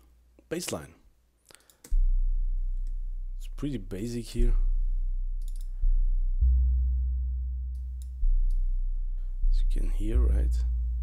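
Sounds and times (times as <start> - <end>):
deep synth bassline: 1.9 - 11.0.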